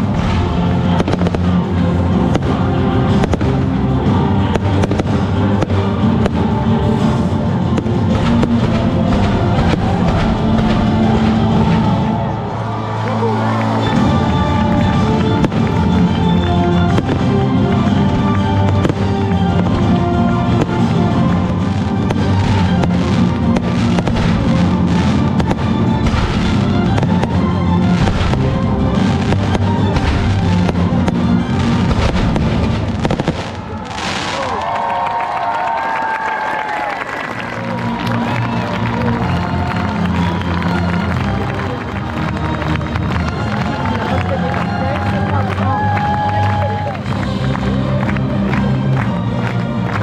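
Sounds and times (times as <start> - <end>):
fireworks bursting: 0.0 - 12.4, 13.9 - 35.0
loud music: 0.0 - 35.2, 37.2 - 50.0.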